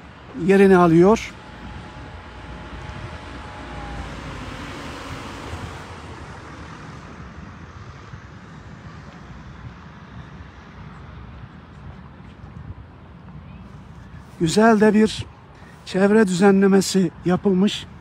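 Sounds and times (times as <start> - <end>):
vehicle passing: 0.0 - 9.0.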